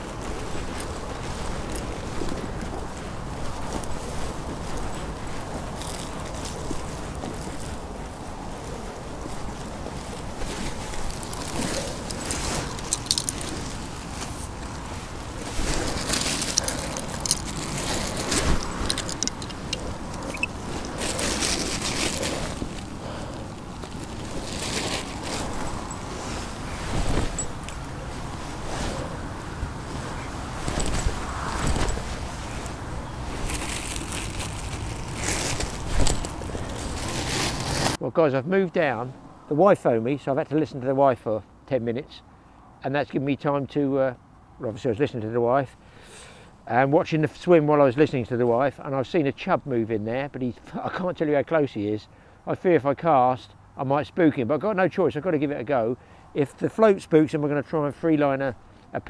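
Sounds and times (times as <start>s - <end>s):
rough rumble: 0.0s - 38.0s
rustles and knocks of kit handling: 0.0s - 38.0s
wind buffeting microphone: 0.0s - 38.0s.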